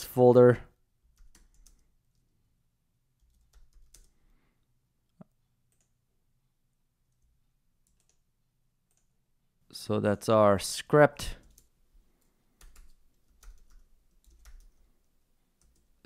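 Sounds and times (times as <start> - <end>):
faint keyboard typing: 1.0 - 2.4, 3.1 - 4.2, 5.2 - 6.0, 7.0 - 9.2, 11.4 - 16.0.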